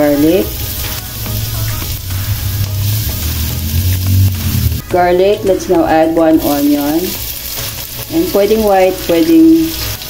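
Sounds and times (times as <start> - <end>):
garlic sizzling in hot oil: 0.0 - 10.0
low hum: 0.5 - 6.6.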